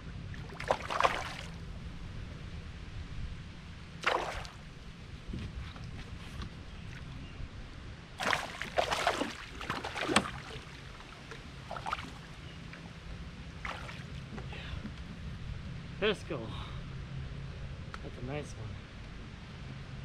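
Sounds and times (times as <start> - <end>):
steady low rumble: 0.0 - 20.0
fish splashing in water: 0.4 - 1.6, 4.0 - 4.6, 8.2 - 12.3, 13.6 - 14.2.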